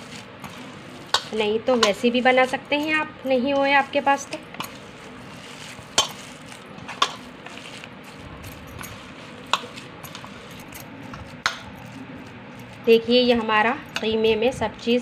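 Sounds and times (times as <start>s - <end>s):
hand kneading minced meat: 0.0s - 15.0s.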